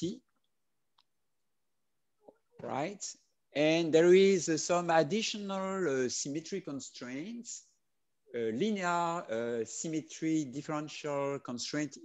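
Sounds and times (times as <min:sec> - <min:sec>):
man speaking: 0:02.6 - 0:07.7, 0:08.3 - 0:12.0.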